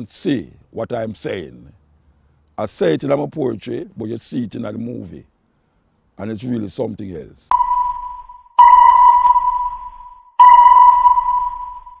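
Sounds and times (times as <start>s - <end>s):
electronic sonar pings: 7.5s - 12.0s.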